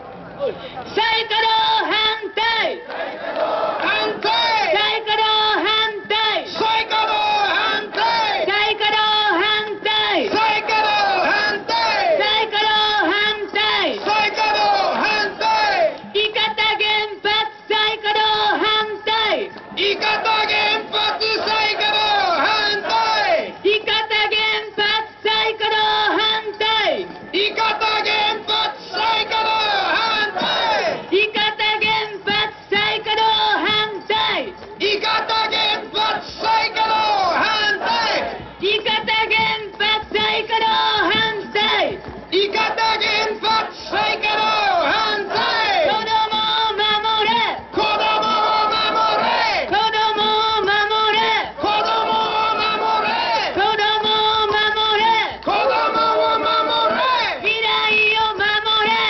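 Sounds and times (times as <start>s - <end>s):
protest chant over loudspeaker: 0.0s - 59.0s.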